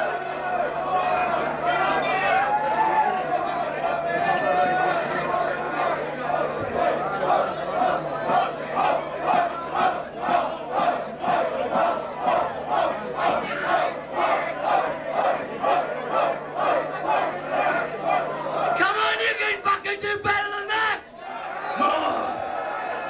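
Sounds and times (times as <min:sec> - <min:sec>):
crowd chanting in unison: 0:00.0 - 0:18.8, 0:21.1 - 0:23.0.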